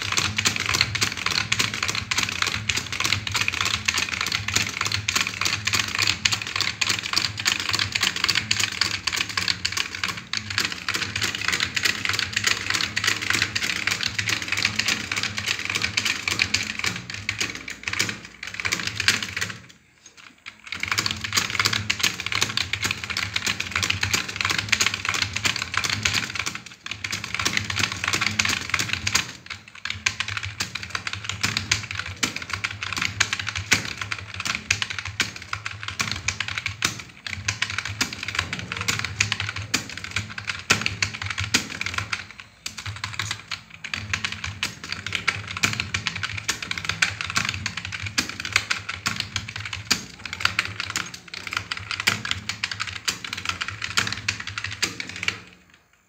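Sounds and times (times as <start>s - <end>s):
fast typing on keyboard: 0.0s - 56.0s.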